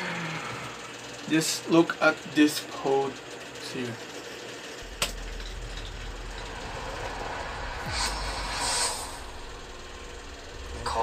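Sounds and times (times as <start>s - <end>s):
airy whooshing: 4.8s - 11.0s
deep steady rumble: 4.8s - 11.0s.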